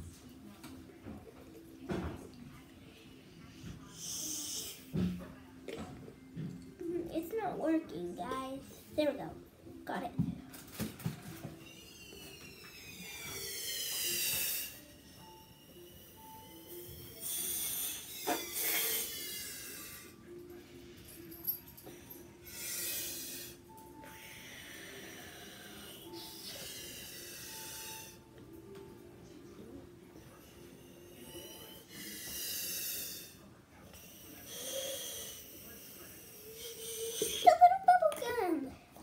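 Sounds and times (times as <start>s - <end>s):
child blowing into ball: 11.7s - 19.8s.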